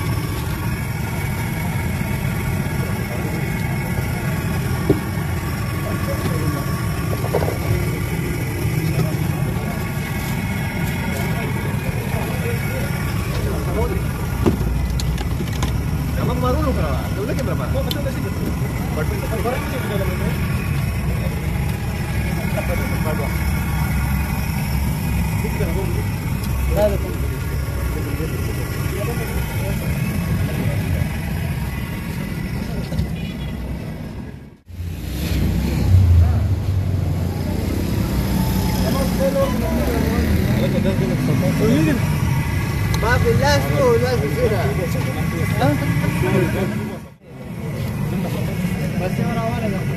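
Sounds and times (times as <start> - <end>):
people talking: 0.0 - 33.5, 36.1 - 49.9
low rumble of traffic: 0.0 - 49.9.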